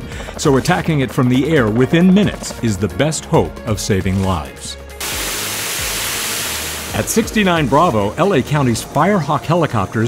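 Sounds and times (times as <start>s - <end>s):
helicopter hovering: 0.0s - 3.0s, 5.0s - 10.0s
water spray rushing: 5.0s - 7.6s.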